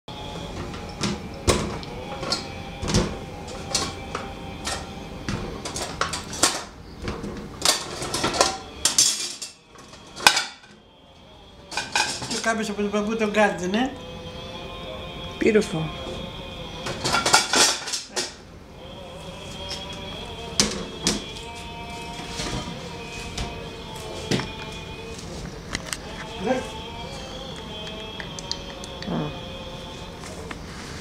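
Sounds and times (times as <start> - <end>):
dishes and cutlery clinking: 0.6 - 10.8, 11.6 - 13.0, 16.8 - 18.4, 19.6 - 27.0.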